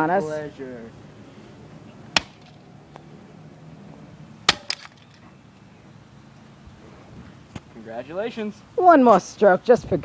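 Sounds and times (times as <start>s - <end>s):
sledgehammer cracking plastic case: 4.5s - 5.2s.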